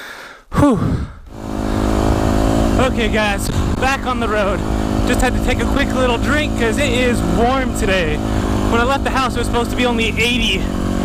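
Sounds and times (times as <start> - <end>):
dirt bike engine running: 1.3 - 11.0.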